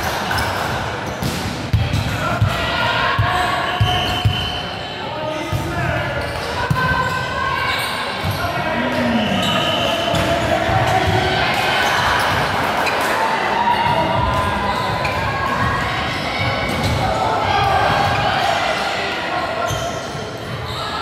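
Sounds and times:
players calling out: 6.3 - 20.0
shoes squeaking on court floor: 7.7 - 13.1, 19.6 - 21.0.

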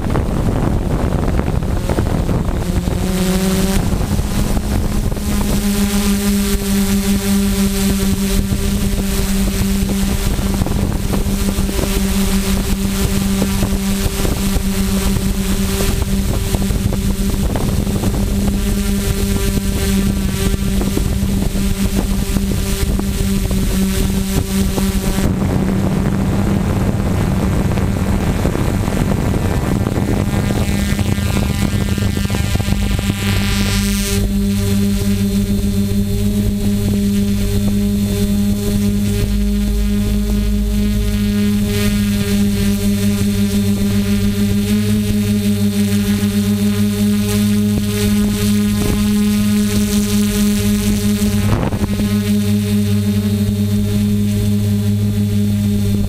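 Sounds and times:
drone propellers humming: 0.0 - 56.0
rushing noise: 15.1 - 45.5.

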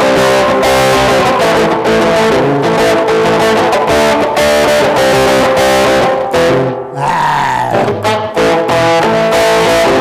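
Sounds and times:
electric guitar through an amp: 0.0 - 10.0.

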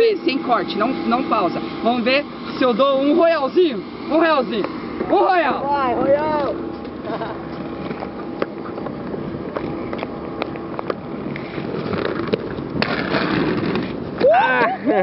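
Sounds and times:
laughter: 7.0 - 7.5, 14.7 - 15.0
skate wheels rolling over bricks: 8.9 - 15.0
skates grinding a ledge: 11.3 - 14.8.

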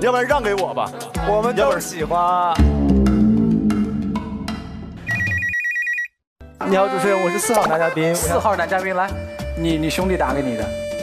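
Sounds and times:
background music: 0.0 - 5.2, 6.4 - 11.0
trilling electronic phone ring: 5.1 - 6.2.

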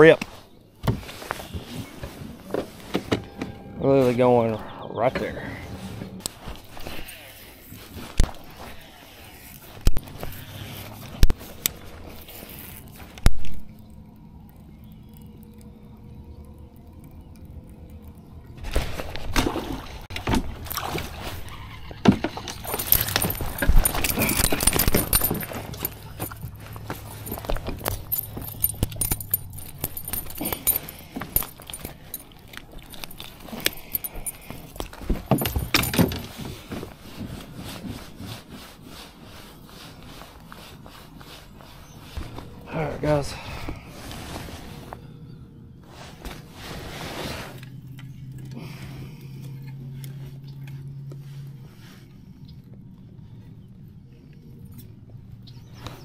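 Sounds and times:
rustling: 0.0 - 4.5, 5.4 - 15.3, 17.1 - 52.5
spinnerbait jangling rattles: 20.6 - 36.3.

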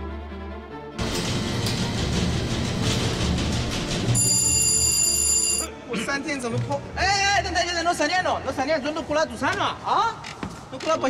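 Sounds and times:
lift rumbling and rattling: 1.0 - 4.1.

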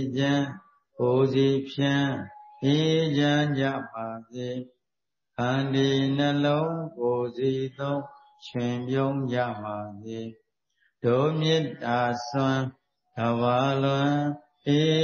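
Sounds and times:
man chanting: 0.0 - 4.8, 5.4 - 10.4, 11.0 - 15.0.

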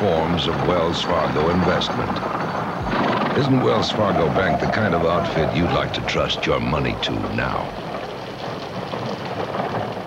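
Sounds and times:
rumble of hooves and wheels: 0.0 - 10.0.

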